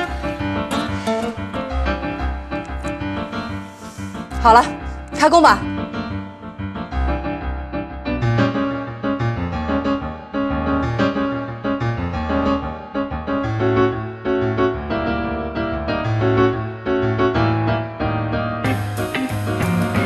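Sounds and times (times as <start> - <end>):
piano or keyboard music: 0.0 - 20.0
steady bass line: 18.7 - 20.0.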